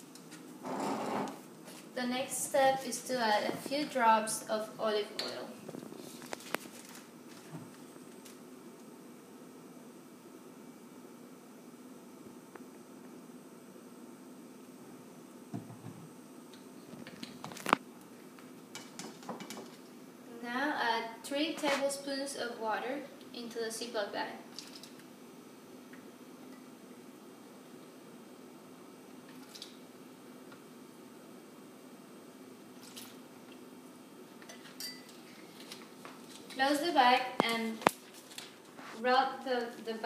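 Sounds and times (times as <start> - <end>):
steady low hum: 0.0 - 40.0
plastic bag handled: 5.8 - 7.5.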